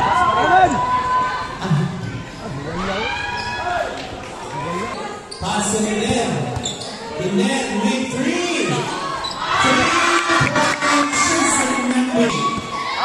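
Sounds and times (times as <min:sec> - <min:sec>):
spectators shouting and chatting: 0:00.0 - 0:13.0.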